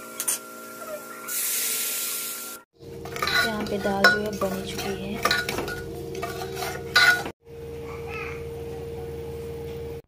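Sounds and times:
metal ladle stirring dal: 0:03.0 - 0:07.3
ladle clinking against pot: 0:03.1 - 0:07.3.

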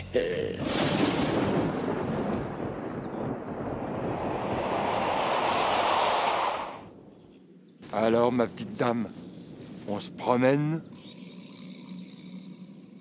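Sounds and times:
loud rushing noise: 0:03.9 - 0:06.9.

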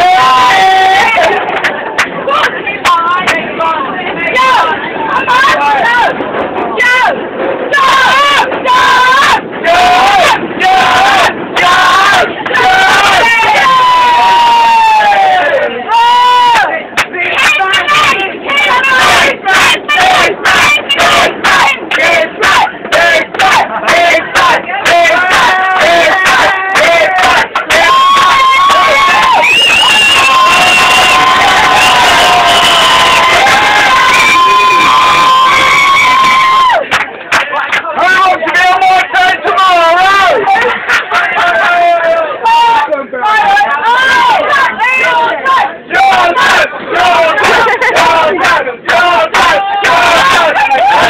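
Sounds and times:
group chanting loudly: 0:06.8 - 0:29.5, 0:41.3 - 0:51.0.

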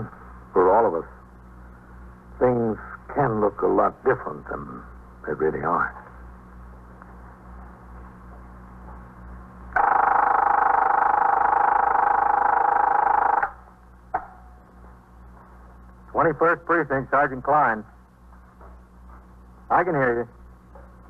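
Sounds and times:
low recording hum: 0:00.0 - 0:21.0
telephone bell ringing: 0:09.8 - 0:13.5.

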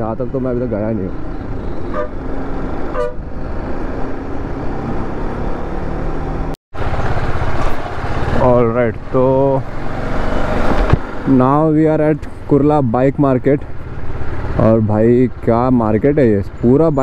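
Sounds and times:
vehicle horn toots: 0:01.9 - 0:02.2, 0:02.9 - 0:03.2.

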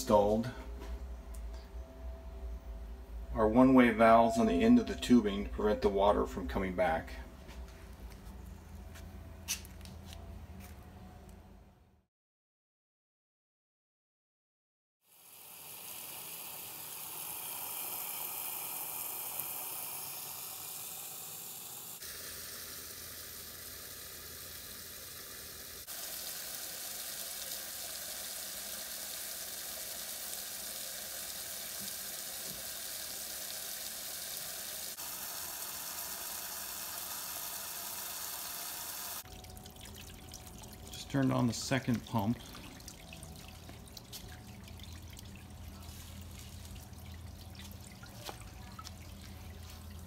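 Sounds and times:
water jet splashing into pot: 0:15.3 - 0:42.9.

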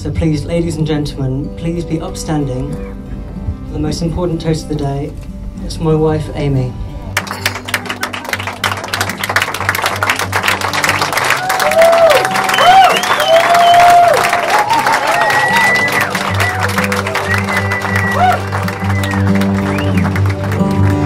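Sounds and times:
background music: 0:00.0 - 0:21.0
people applauding: 0:07.2 - 0:21.0
whoops and cheers: 0:11.1 - 0:20.2.

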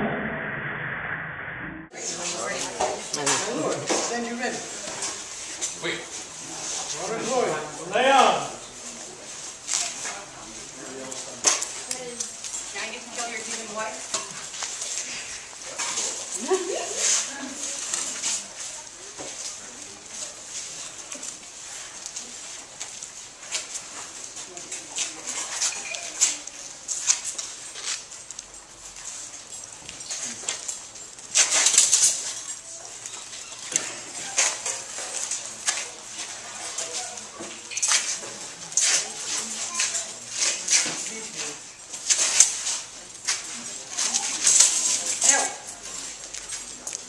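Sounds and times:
fencing blades clashing and scraping: 0:29.3 - 0:46.8.

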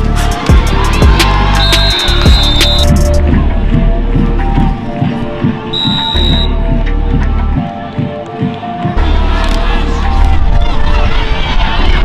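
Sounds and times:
music with beat and deep bass: 0:00.0 - 0:12.0.

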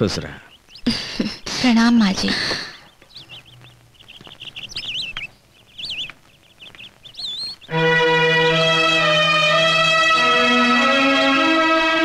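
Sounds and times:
birds chirping: 0:00.0 - 0:12.0
bird swooping calls: 0:00.4 - 0:10.2.

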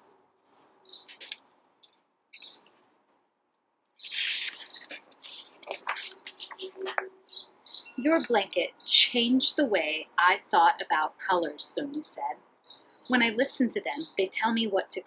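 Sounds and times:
small birds chirping: 0:00.8 - 0:02.8, 0:03.9 - 0:10.9, 0:11.6 - 0:15.0.

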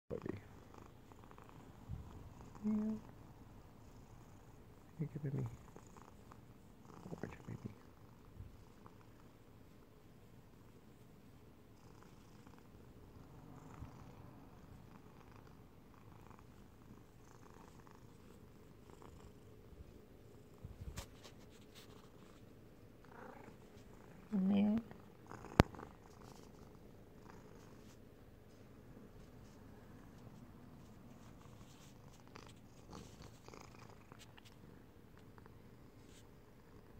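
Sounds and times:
cat purring: 0:00.1 - 0:36.9
faint rustles against phone: 0:19.8 - 0:22.7, 0:25.6 - 0:34.7, 0:35.9 - 0:36.4.

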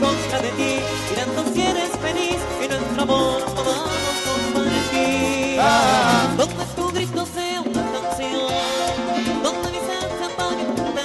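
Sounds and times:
live merengue band music: 0:00.0 - 0:11.0.

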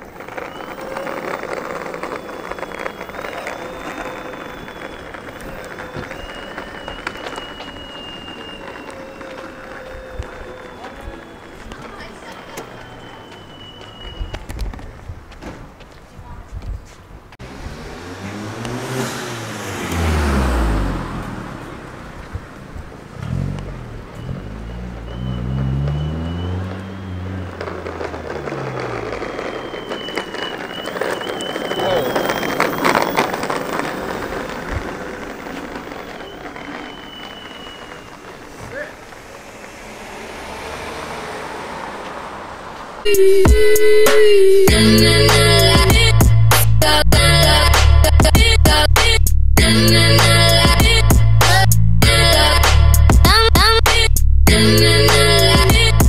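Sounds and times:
cars driving past slowly: 0:00.0 - 0:16.2, 0:17.0 - 0:56.0
steady traffic noise: 0:00.0 - 0:56.0.

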